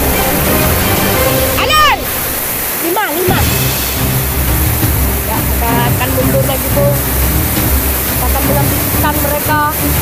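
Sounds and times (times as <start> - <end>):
river rapid rushing water: 0.0 - 10.0
person shouting: 1.6 - 2.2
background music with bass: 3.4 - 10.0.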